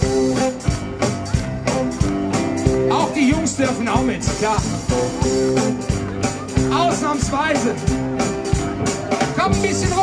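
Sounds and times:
drum kit beat: 0.0s - 10.0s
guitar and keyboard chords: 0.0s - 10.0s.

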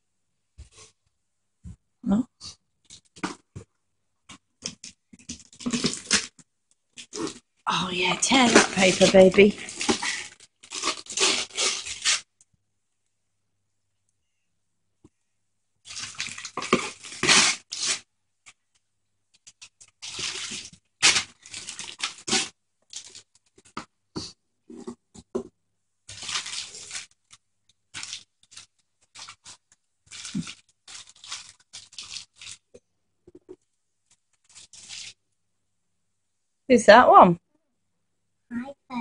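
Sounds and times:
wrapping paper tearing and crinkling: 4.6s - 12.3s, 15.9s - 18.1s, 19.4s - 23.8s, 26.1s - 32.7s, 34.4s - 35.2s.

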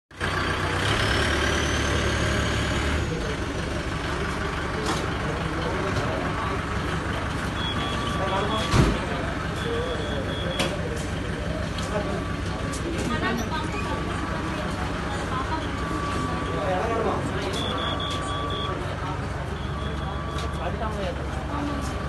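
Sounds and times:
ambulance engine idling: 0.1s - 22.0s
short high beeps: 7.6s - 8.7s, 9.5s - 10.7s, 15.5s - 20.8s
loud clunk: 8.6s - 9.1s.

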